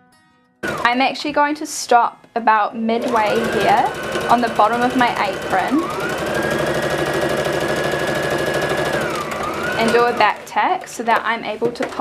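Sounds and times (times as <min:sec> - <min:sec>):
electric sewing machine stitching: 0:00.6 - 0:01.1, 0:02.9 - 0:12.0.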